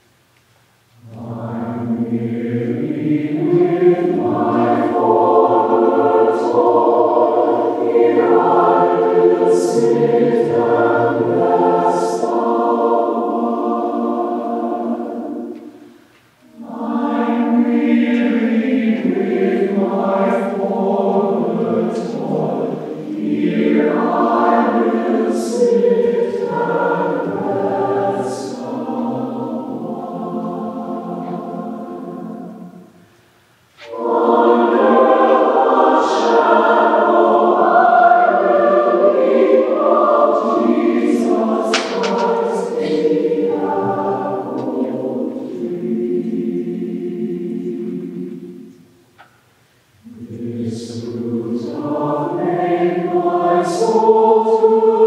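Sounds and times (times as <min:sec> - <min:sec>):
mixed choir singing: 0:01.0 - 0:33.2, 0:33.8 - 0:49.3, 0:49.9 - 0:55.0.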